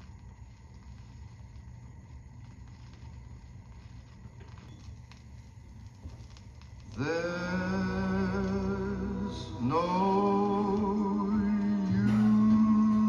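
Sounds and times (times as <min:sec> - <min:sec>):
faint vinyl hiss: 0:00.0 - 0:13.0
record player low rumble: 0:00.0 - 0:13.0.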